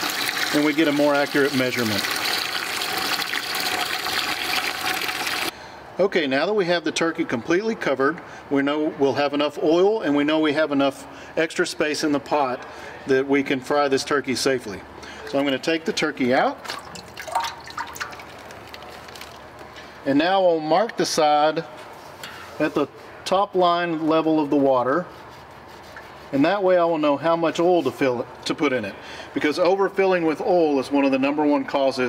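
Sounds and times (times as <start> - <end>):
faucet water filling metal pot: 0.0 - 5.5, 16.7 - 18.8.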